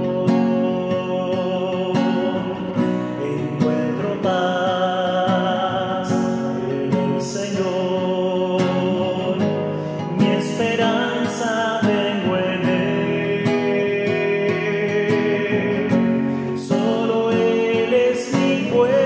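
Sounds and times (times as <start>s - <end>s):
classical guitar: 0.0s - 19.0s
man singing: 0.0s - 19.0s.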